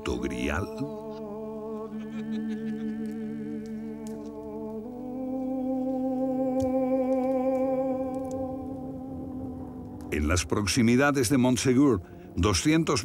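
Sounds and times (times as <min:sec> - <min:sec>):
wordless humming voice: 0:00.0 - 0:13.0.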